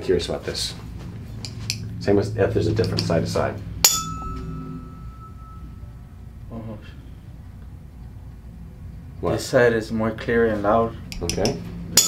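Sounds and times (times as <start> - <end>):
tuning fork ringing: 2.7 - 6.5.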